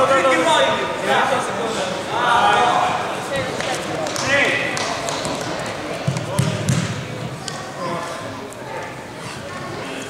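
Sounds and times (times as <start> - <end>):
men shouting and talking: 0.0 - 4.8.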